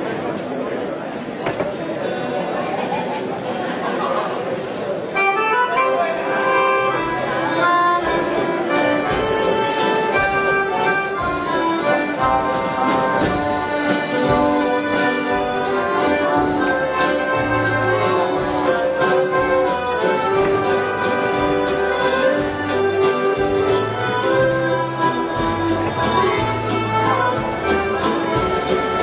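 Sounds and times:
crowd chatter: 0:00.0 - 0:29.0
accordions playing dance tune: 0:05.1 - 0:29.0.

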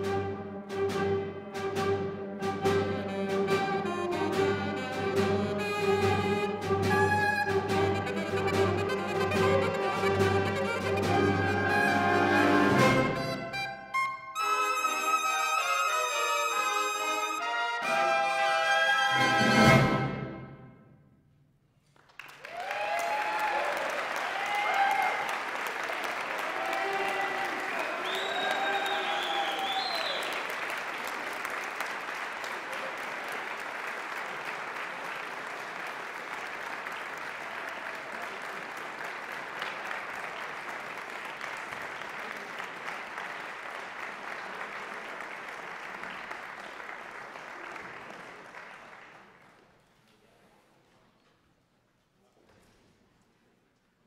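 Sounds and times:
audience applauding: 0:02.9 - 0:13.8, 0:21.8 - 0:49.9
audience whooping: 0:09.4 - 0:12.8, 0:22.3 - 0:31.2.

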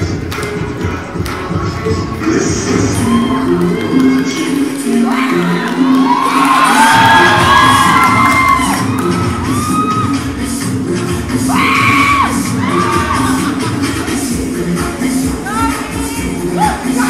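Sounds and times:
loud dance music: 0:00.0 - 0:17.0
audience shouting and cheering: 0:02.8 - 0:04.1, 0:04.8 - 0:10.6, 0:11.3 - 0:14.1.

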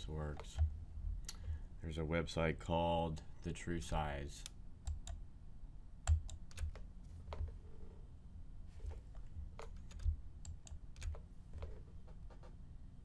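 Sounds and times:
computer keyboard typing: 0:04.9 - 0:05.2, 0:06.1 - 0:07.6, 0:09.6 - 0:12.5.

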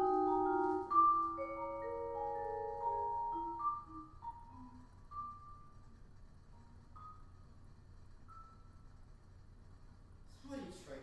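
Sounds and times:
soft vibraphone notes: 0:00.0 - 0:05.6.

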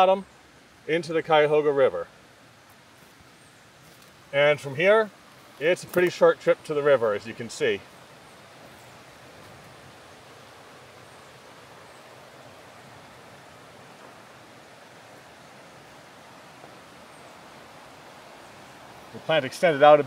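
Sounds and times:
river rushing over rapids: 0:00.0 - 0:20.0.

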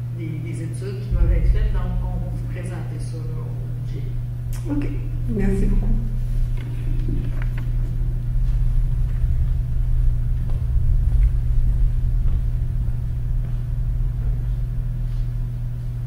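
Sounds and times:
low hum and rumble: 0:00.0 - 0:16.0.

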